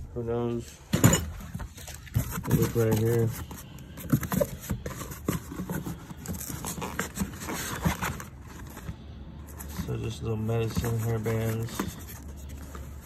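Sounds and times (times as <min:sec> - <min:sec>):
rummaging through plastic items: 0:00.6 - 0:13.0.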